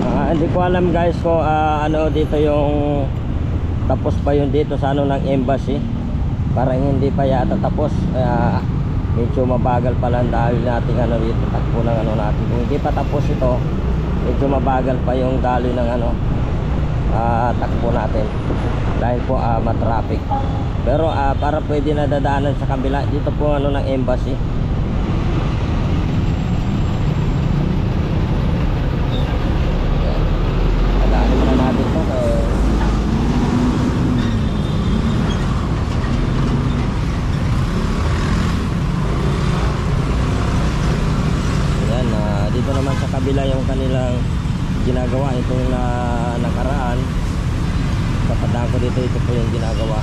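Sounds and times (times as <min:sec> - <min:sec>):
wind and road noise: 0:00.0 - 0:50.0
person talking: 0:31.0 - 0:33.0, 0:48.3 - 0:50.0.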